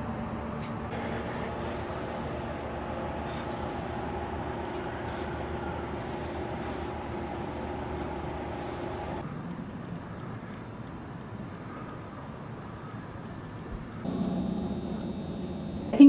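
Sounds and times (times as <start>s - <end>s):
indoor room hum with low tone: 0.0s - 16.0s
outdoor ambience hum and rumble: 0.0s - 16.0s.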